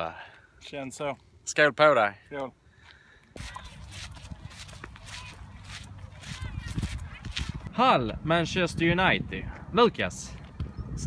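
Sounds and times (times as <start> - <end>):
scuffing footsteps on path: 2.8 - 8.2.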